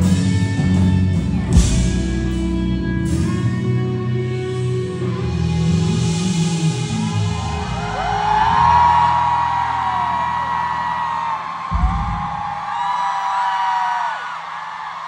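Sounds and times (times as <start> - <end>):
live band with guitar and drums: 0.0 - 12.6
crowd screaming: 6.8 - 15.0.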